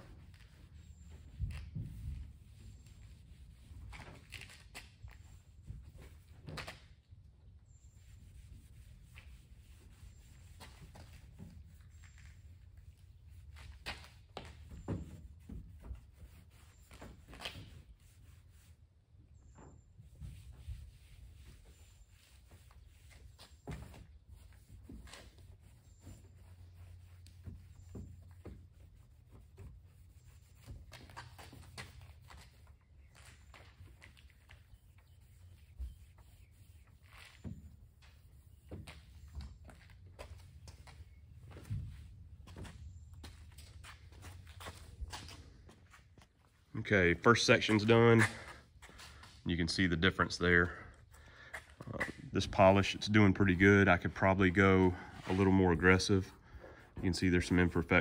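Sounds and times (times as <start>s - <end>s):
towel rubbing car paint: 0.0s - 6.9s, 7.5s - 58.0s
footsteps: 37.0s - 58.0s.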